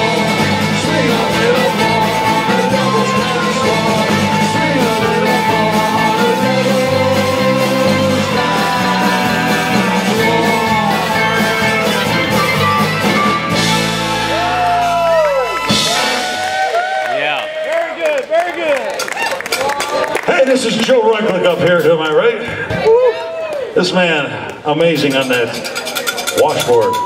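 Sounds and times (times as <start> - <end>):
live folk band playing: 0.0 - 16.6
audience shouting and cheering: 0.0 - 24.0, 26.4 - 27.0.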